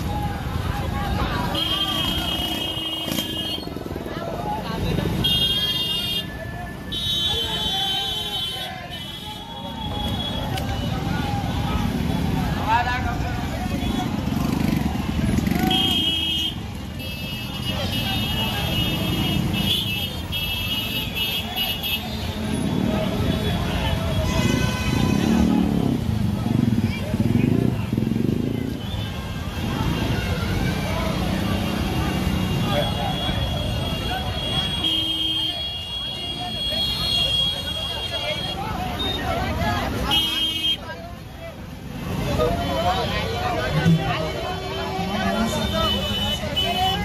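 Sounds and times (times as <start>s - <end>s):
many voices: 0.0s - 47.0s
vehicle horns: 1.4s - 3.8s, 5.1s - 11.1s, 13.6s - 26.0s, 31.1s - 40.9s, 43.8s - 47.0s
motorcycle engines running: 9.5s - 35.2s.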